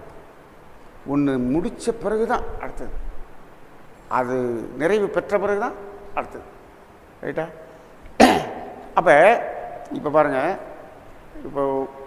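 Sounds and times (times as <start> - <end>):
man coughing: 8.2 - 8.8.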